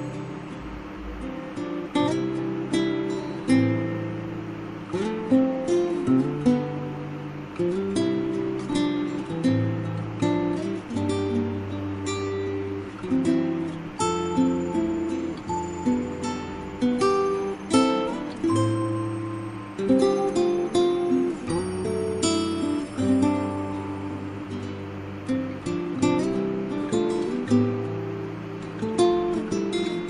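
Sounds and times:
acoustic guitar music: 0.0s - 30.0s.

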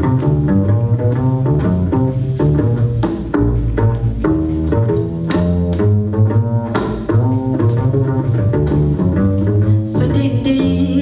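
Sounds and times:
jazz combo playing: 0.0s - 11.0s
plucked double bass: 0.0s - 11.0s.

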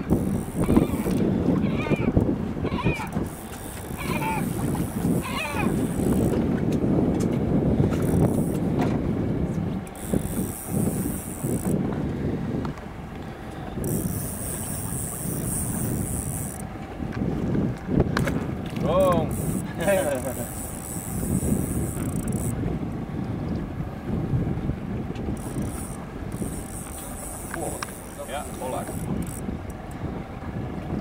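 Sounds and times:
boat noise: 0.0s - 31.0s
wind buffeting microphone: 0.0s - 31.0s
gull calls: 0.6s - 3.1s, 3.9s - 4.5s, 5.2s - 5.8s.

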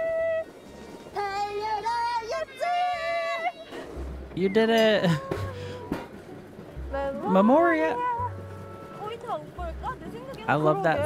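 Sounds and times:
music: 0.0s - 2.7s, 5.4s - 11.0s.

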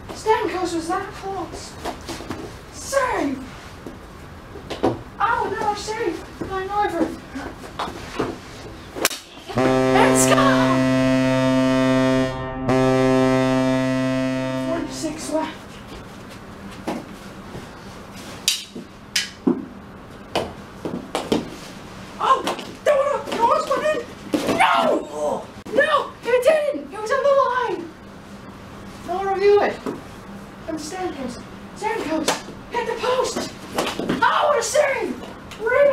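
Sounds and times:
voices: 9.2s - 15.6s
goal horn blast: 9.5s - 15.6s.

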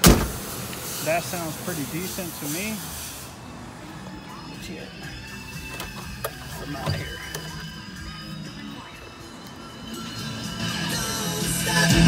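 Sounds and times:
music with singing from car stereo: 3.4s - 12.0s.

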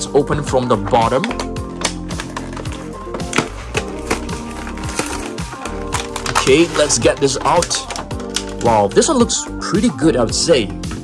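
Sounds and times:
background music: 0.0s - 11.0s
card and plastic crinkling: 0.8s - 9.0s.

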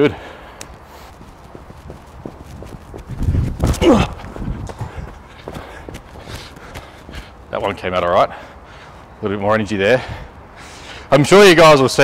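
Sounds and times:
footsteps on artificial turf: 0.6s - 7.9s.

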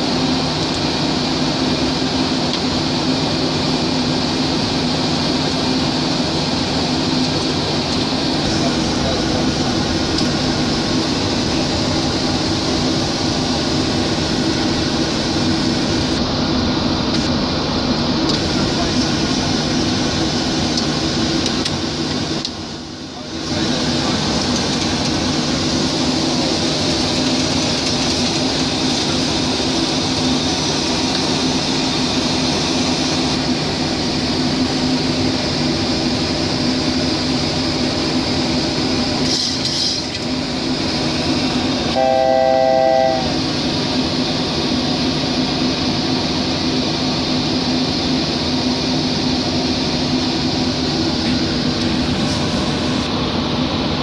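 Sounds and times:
cockpit airflow and hum: 0.0s - 54.0s
electronic cockpit tone: 41.9s - 43.4s.

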